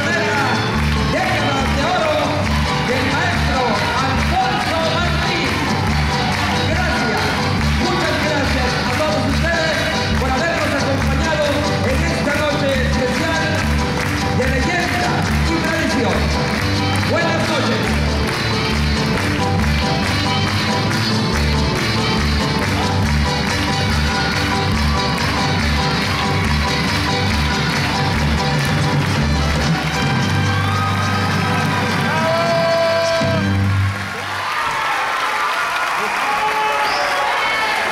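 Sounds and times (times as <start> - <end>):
upbeat dance music: 0.0 - 33.9
audience applause and cheering: 0.0 - 37.9.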